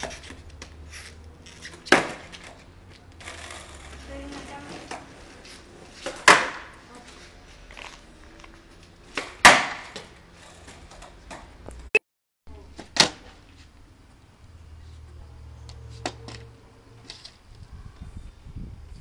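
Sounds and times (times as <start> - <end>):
skateboard slapping on asphalt: 0.0 - 6.8, 9.0 - 11.4
skateboard wheels rolling: 0.0 - 11.6.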